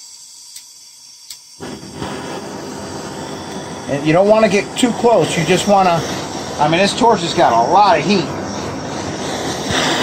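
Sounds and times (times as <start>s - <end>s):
blowtorch flame hissing: 0.0s - 10.0s.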